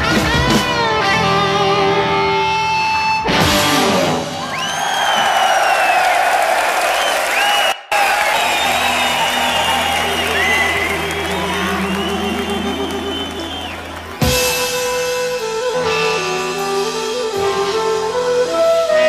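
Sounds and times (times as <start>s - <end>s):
crowd cheering and whistling: 4.1s - 15.0s.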